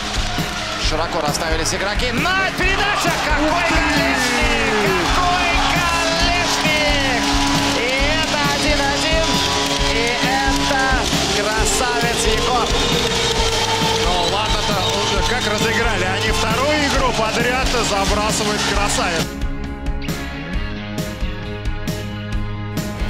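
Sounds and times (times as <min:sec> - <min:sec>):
ice hockey game sounds: 0:00.0 - 0:19.3
background music: 0:00.0 - 0:23.0
voices: 0:01.2 - 0:19.2.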